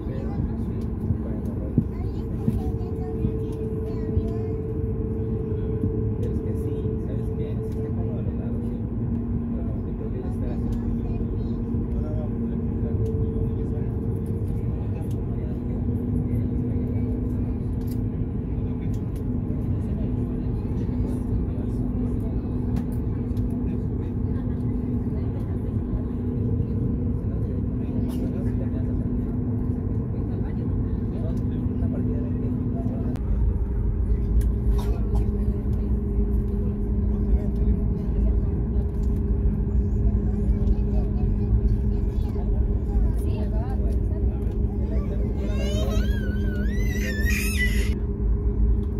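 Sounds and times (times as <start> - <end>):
airplane engine rumble: 0.0 - 48.9
constant cabin hum: 0.0 - 48.9.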